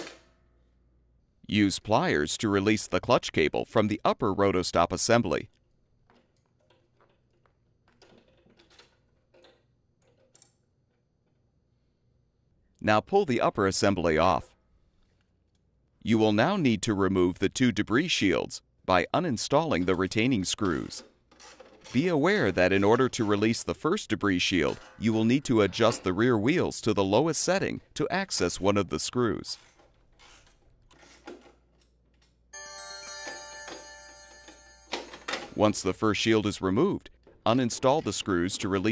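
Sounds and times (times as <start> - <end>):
electronic bell-like alert chime: 32.6 - 35.4.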